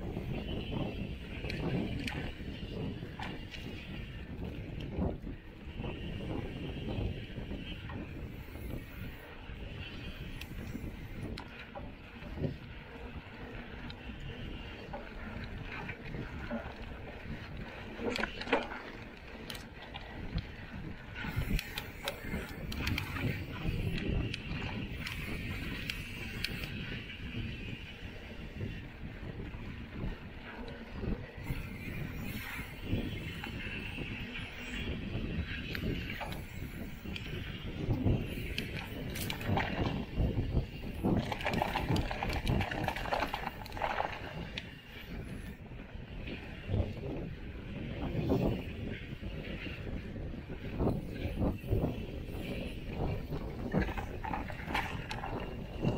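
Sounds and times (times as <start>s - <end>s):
bike rattling: 0.0s - 55.9s
bike tyres crunching on dirt: 0.0s - 55.9s
wind rumble on microphone: 0.0s - 55.9s
bike knocks and rattles: 37.2s - 44.7s.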